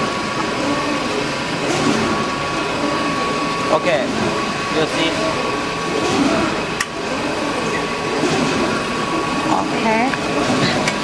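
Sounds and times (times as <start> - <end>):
machine hum with high tone: 0.0 - 11.0.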